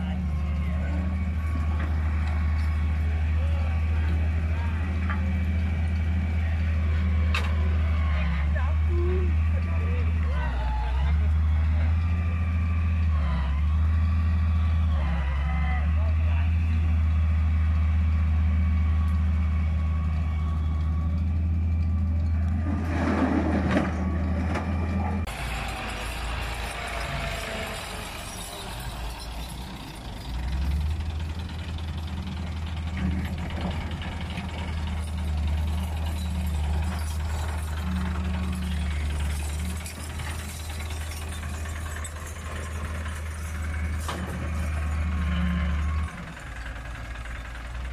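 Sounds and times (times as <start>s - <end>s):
tractor diesel engine running: 0.0s - 47.9s.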